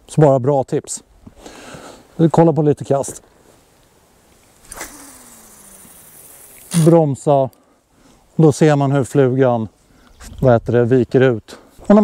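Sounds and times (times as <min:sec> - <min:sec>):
line hissing off reel: 0:04.5 - 0:07.1
fishing rod swish: 0:04.6 - 0:06.9.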